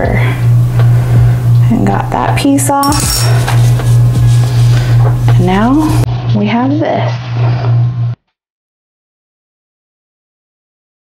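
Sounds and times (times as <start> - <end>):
steady low hum: 0.0 - 6.4.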